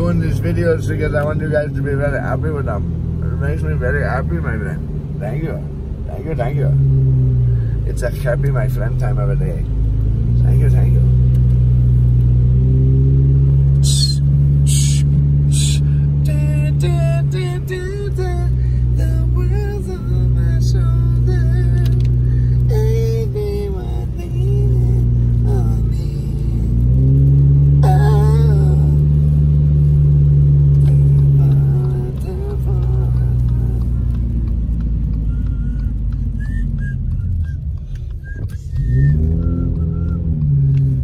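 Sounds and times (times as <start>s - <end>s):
voice on car stereo: 0.0s - 6.8s, 10.4s - 11.2s, 27.8s - 29.2s, 30.8s - 34.0s
car engine and road rumble: 0.0s - 41.0s.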